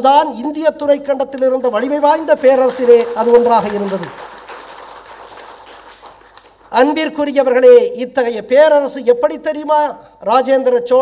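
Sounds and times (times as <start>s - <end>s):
audience applauding: 1.8s - 6.9s.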